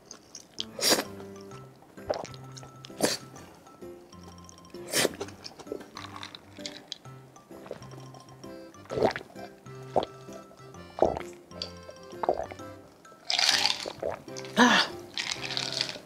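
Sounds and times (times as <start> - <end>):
background music with held notes: 0.4 - 16.0
person gulping a drink: 2.0 - 3.3, 4.8 - 7.0, 7.6 - 8.2, 8.8 - 12.7, 13.3 - 16.0.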